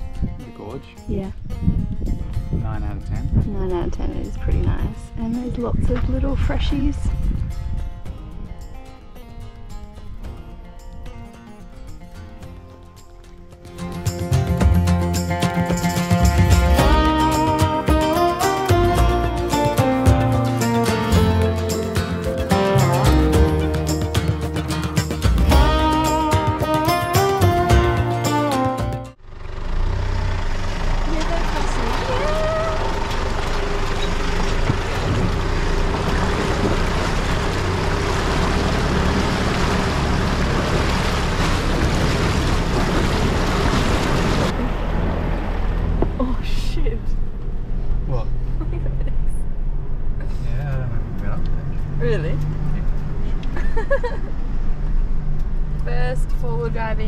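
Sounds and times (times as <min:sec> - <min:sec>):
low engine drone: 0:13.9 - 0:57.0
wind and water rush: 0:34.3 - 0:45.6.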